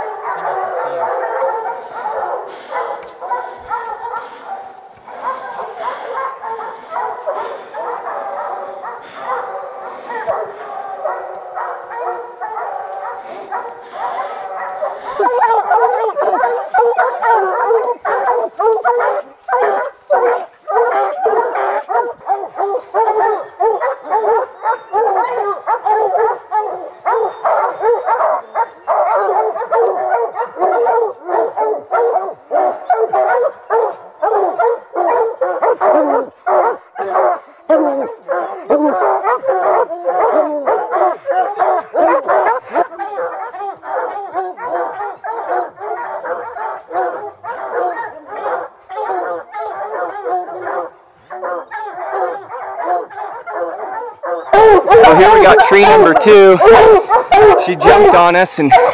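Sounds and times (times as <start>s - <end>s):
hounds baying and barking: 0.0s - 58.9s.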